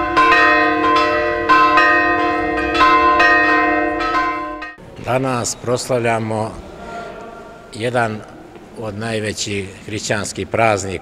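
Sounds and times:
church bells ringing: 0:00.0 - 0:06.2.

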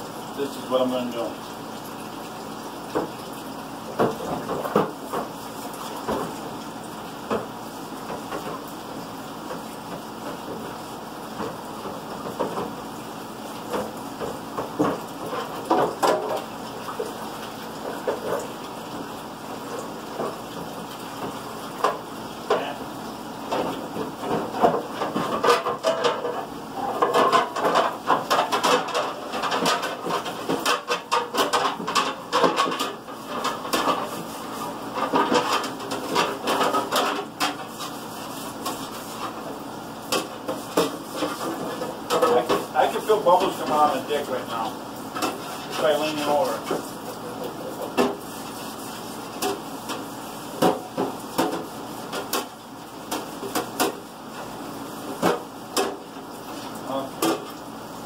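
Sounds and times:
water splashing in sink: 0:00.0 - 0:58.0.

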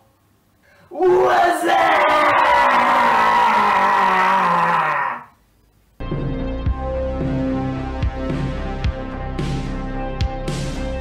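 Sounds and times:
man yelling: 0:00.9 - 0:05.3.

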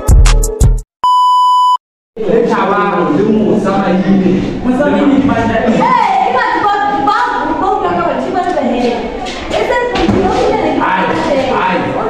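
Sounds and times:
hip-hop music with heavy bass: 0:00.0 - 0:00.8
electronic beep: 0:01.0 - 0:01.8.

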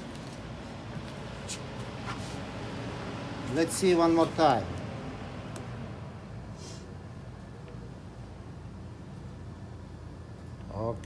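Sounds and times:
computer fans whirring: 0:00.0 - 0:11.0
brief hiss: 0:06.5 - 0:06.9.

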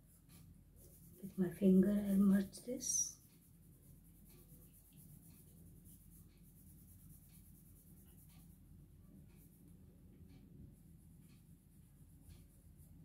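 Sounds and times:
pencil scratching on paper: 0:00.0 - 0:13.0.

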